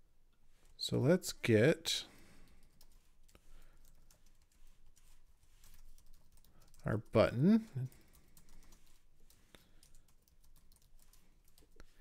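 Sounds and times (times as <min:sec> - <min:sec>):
faint computer keyboard typing: 0:02.4 - 0:12.0.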